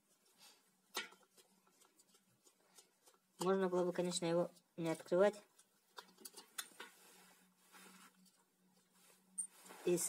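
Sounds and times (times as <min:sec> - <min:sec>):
faint ticks and rustles: 0:01.0 - 0:10.0.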